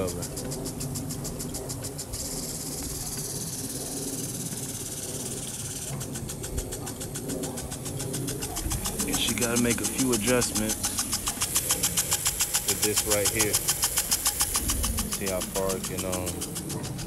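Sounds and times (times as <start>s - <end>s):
sprinkler arm ticking: 0.0s - 17.0s.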